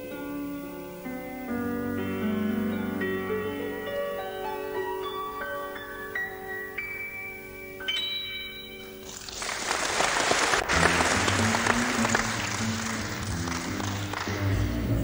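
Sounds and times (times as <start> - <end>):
audience applause: 9.1 - 15.0.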